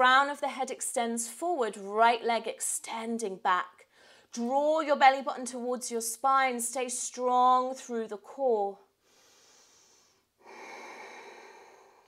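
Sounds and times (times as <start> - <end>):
woman exhaling: 10.4 - 12.0.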